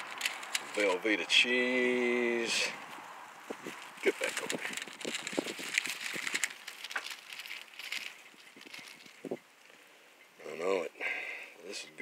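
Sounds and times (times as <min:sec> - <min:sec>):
aluminium foil crinkling: 0:00.0 - 0:01.2, 0:02.8 - 0:09.5.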